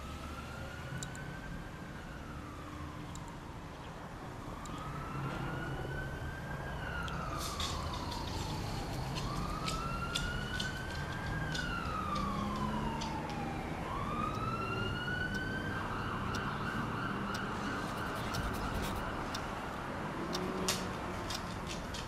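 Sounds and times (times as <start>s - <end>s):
siren wailing: 0.0s - 20.4s
sharp clicks: 17.3s - 19.5s.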